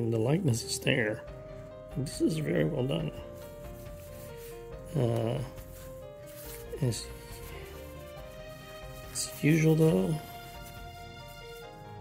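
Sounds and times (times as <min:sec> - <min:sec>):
soft background music: 0:00.0 - 0:12.0
hands rubbing cloth: 0:02.3 - 0:12.0.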